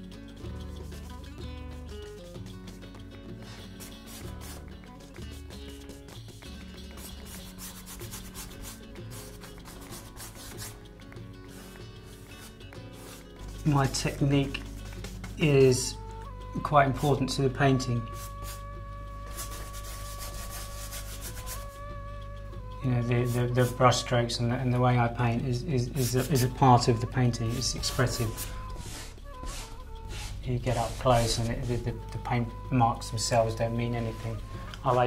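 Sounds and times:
soft background music: 0.0 - 35.0
paintbrush scrubbing on canvas: 3.4 - 16.0, 18.0 - 21.9, 23.0 - 23.8, 25.8 - 32.5.

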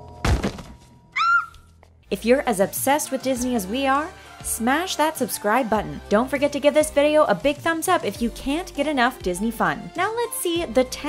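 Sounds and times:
body thudding on floor: 0.2 - 0.9.

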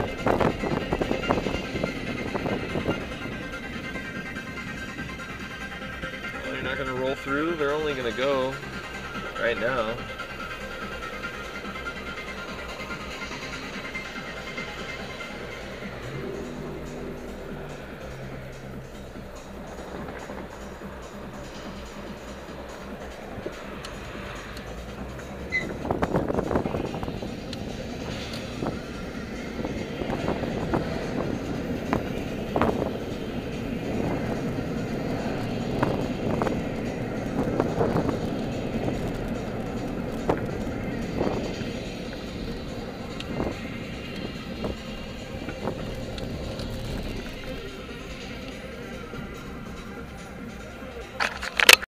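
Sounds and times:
car engine: 0.0 - 51.9
music playing in car: 0.0 - 51.9
road noise: 0.0 - 51.9.

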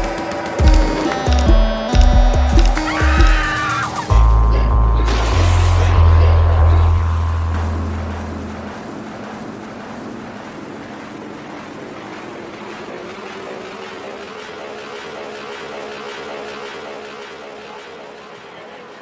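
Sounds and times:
deep bass notes: 0.0 - 3.5, 4.1 - 10.4
low hum rising in pitch: 0.0 - 19.0
noisy rumble: 0.0 - 19.0.

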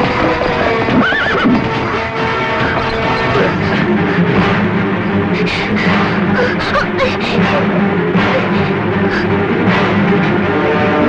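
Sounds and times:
background film music: 0.0 - 11.0
horse whinnying: 0.6 - 3.9.

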